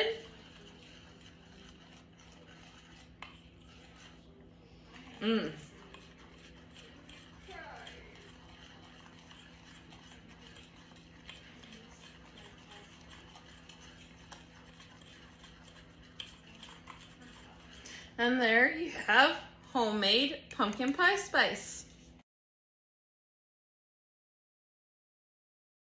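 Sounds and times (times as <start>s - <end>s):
whisk scratching in metal bowl: 0.0s - 22.2s.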